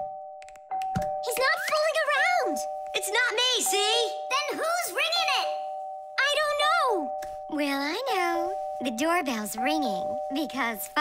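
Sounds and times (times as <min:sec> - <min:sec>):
electric doorbell chiming: 0:00.0 - 0:11.0.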